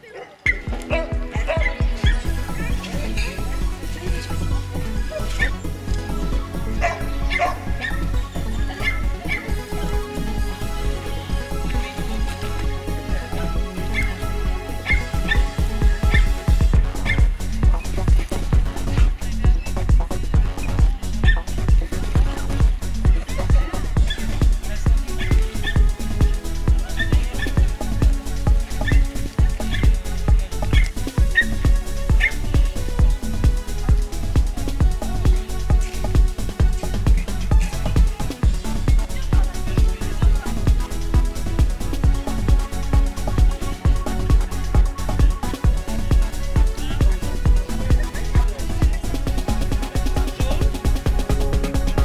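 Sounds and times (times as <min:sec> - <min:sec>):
background music with steady beat: 0:00.0 - 0:52.0
dog yipping and barking: 0:00.5 - 0:02.3, 0:06.8 - 0:08.0, 0:14.8 - 0:15.4.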